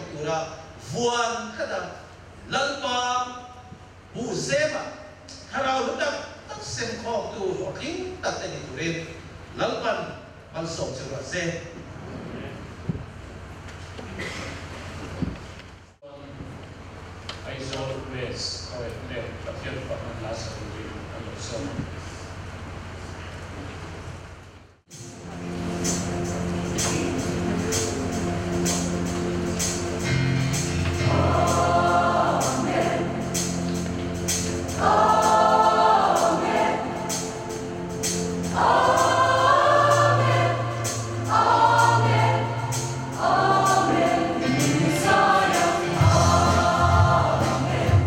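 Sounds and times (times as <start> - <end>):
choir singing gospel song: 24.9 - 48.0
instrumental music with light beat: 24.9 - 48.0.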